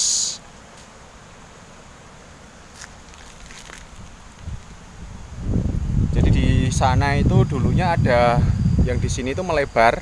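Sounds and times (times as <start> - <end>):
microphone handling noise: 2.8 - 8.9
wind rumble: 3.9 - 10.0.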